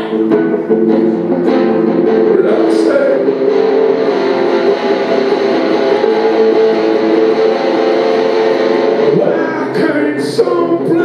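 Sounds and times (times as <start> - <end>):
electric guitar strumming chords: 0.0 - 11.0.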